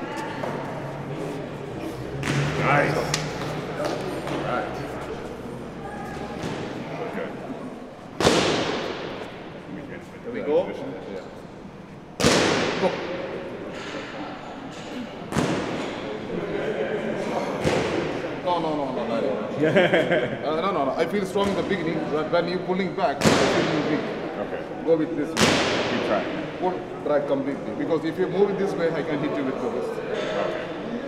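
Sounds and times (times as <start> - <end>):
murmur of voices: 0.0 - 31.0
loud sharp thuds: 8.2 - 9.3.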